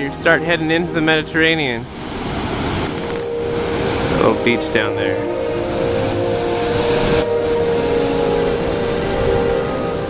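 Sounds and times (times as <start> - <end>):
surf breaking on rocks: 1.4 - 10.0
wind noise on microphone: 1.8 - 10.0.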